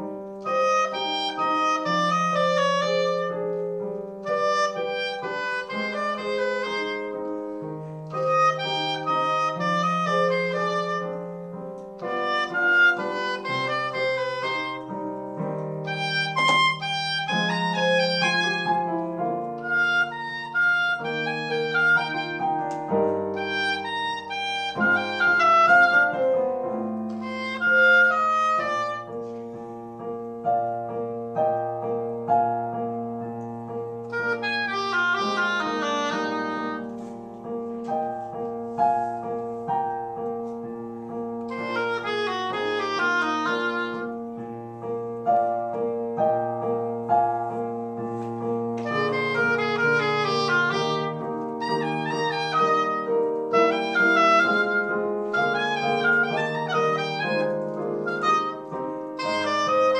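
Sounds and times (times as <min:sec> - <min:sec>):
piano accompaniment: 0:00.0 - 0:59.9
reed woodwind melody: 0:00.0 - 0:59.9.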